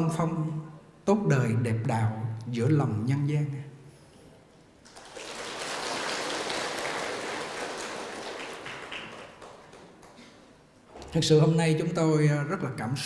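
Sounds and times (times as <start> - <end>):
audience applauding: 4.8 - 10.6.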